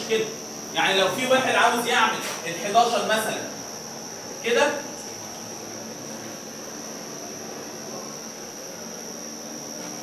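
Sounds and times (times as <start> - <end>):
constant high-pitched whine: 0.0 - 10.0.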